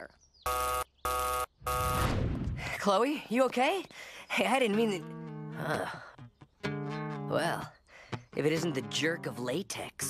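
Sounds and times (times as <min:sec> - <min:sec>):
harsh buzzer blasts: 0:00.5 - 0:02.2.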